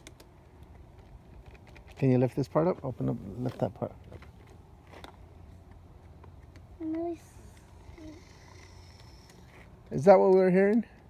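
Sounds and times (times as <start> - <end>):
person speaking: 2.0 - 4.1, 6.7 - 8.8.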